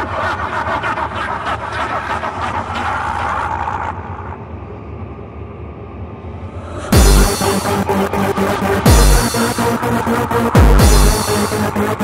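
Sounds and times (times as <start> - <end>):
low hum: 3.9 - 12.0.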